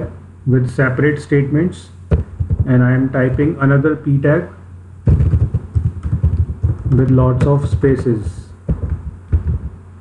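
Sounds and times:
keyboard typing: 5.1s - 9.8s.

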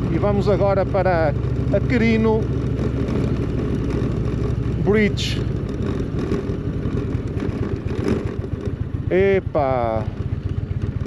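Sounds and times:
faint wind: 0.0s - 11.0s
motorcycle engine rumbling: 0.0s - 11.0s
tyre noise on dirt road: 0.0s - 11.0s
person speaking: 4.8s - 5.5s.

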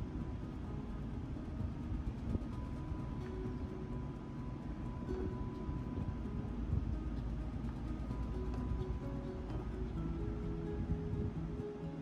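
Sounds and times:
vehicle rolling rumble: 0.0s - 12.0s.

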